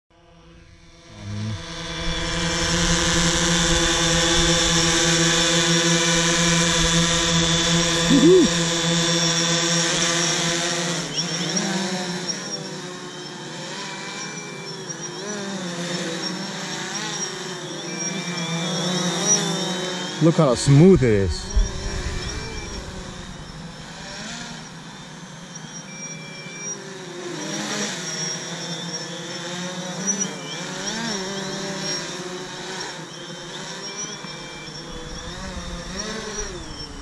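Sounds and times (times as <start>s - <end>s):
drone propellers buzzing: 0.4s - 37.0s.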